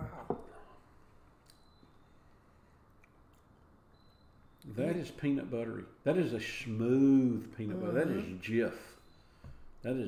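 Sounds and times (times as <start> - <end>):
person exclaiming: 7.7 - 8.3.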